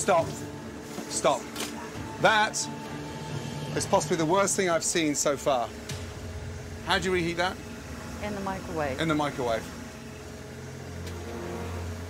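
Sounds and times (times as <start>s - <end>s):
low hum with held tones: 0.0s - 12.0s.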